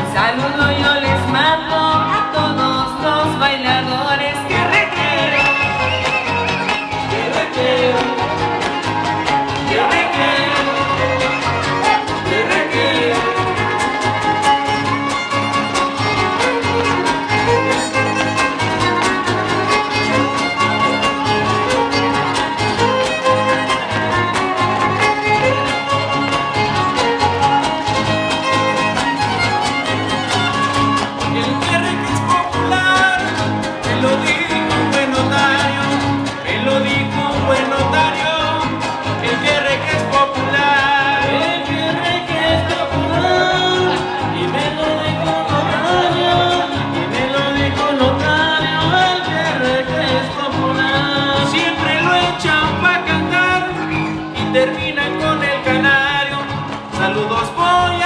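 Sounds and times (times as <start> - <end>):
strummed rhythm guitars: 0.0 - 58.0
violin melody: 5.4 - 31.8.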